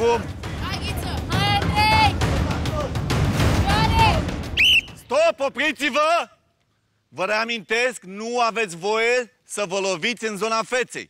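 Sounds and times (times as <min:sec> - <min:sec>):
noisy crowd: 0:00.0 - 0:05.0
referee's whistle blast: 0:04.5 - 0:05.1.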